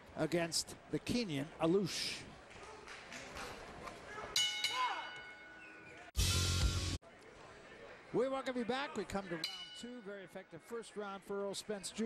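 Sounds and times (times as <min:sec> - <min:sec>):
boxing ring bell: 0:04.4 - 0:05.7, 0:09.4 - 0:10.3.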